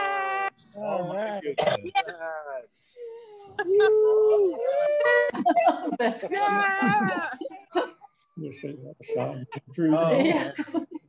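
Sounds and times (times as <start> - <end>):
person wailing with joy: 3.6 - 7.4
high held cry: 6.2 - 7.4.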